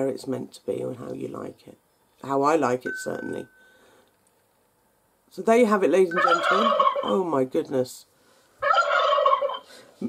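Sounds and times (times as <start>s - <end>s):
doorbell turkey gobble: 6.1s - 7.3s, 8.6s - 9.7s.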